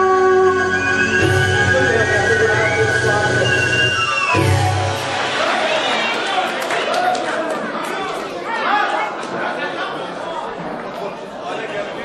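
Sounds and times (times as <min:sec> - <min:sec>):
many voices chattering in a hall: 0:00.0 - 0:12.0.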